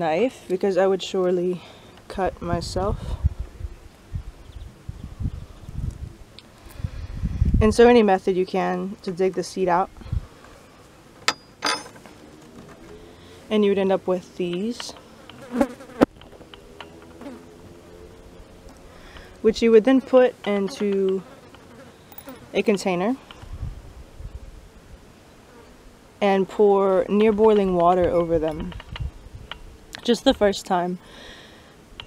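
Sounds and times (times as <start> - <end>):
low rumbles on microphone: 2.2 - 7.9, 23.4 - 24.6
flying insect buzzing: 15.0 - 22.7.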